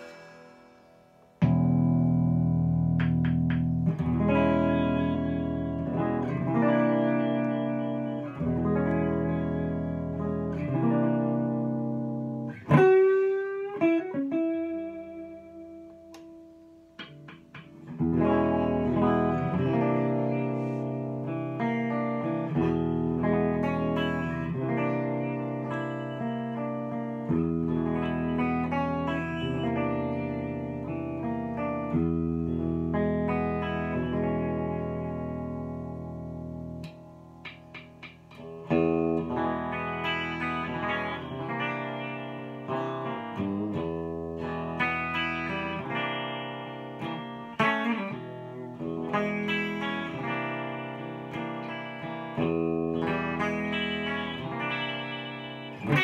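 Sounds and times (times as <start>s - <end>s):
electric guitar blues jazz jam: 0.0s - 56.0s.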